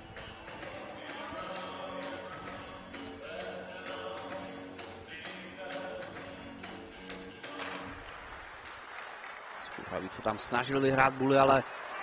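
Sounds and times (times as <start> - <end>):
music over public-address system: 0.0 - 8.8.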